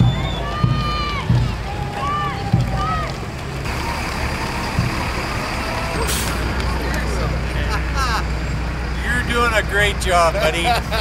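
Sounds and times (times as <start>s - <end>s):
low thuds: 0.0s - 7.5s
vehicle engine rumbling: 0.0s - 11.0s
air brake hiss: 6.0s - 6.5s.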